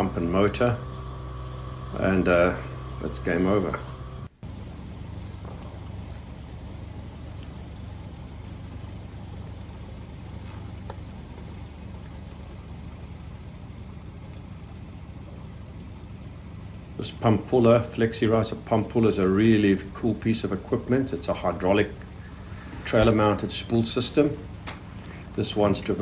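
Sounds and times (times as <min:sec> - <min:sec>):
diesel engine running: 0:00.0 - 0:26.0.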